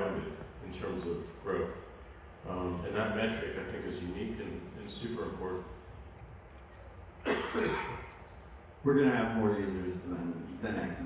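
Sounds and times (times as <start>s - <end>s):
man coughing: 7.2s - 8.1s.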